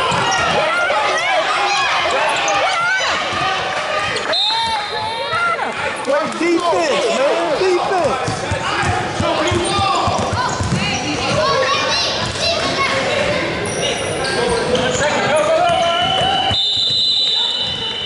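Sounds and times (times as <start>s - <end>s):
people shouting in echoing gym: 0.0s - 18.0s
referee's whistle: 4.3s - 5.2s, 15.7s - 18.0s.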